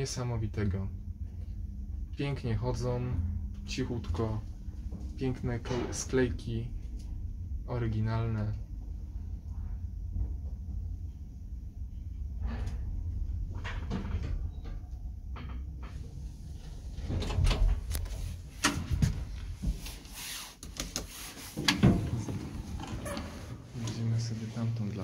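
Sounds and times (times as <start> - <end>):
elevator low hum: 0.0 - 20.2, 21.0 - 25.0
elevator doors knocking and clattering: 0.7 - 19.8, 21.6 - 24.0.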